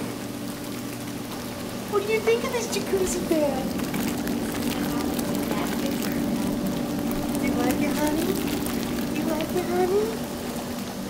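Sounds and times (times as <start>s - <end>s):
pump humming: 0.0s - 11.0s
water churning and bubbling: 0.0s - 11.0s.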